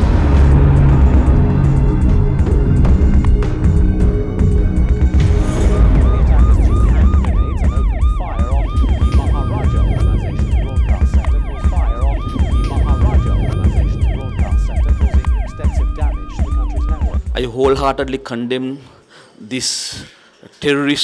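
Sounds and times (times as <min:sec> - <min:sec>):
music: 0:00.0 - 0:18.2
emergency siren yelping: 0:01.7 - 0:17.4.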